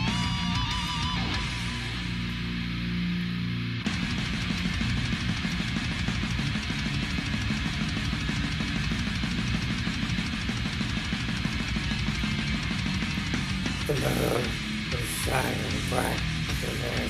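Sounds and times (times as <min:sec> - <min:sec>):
fast dense drumming: 0:00.0 - 0:02.0, 0:03.8 - 0:17.0
distorted electric guitar: 0:00.0 - 0:17.0.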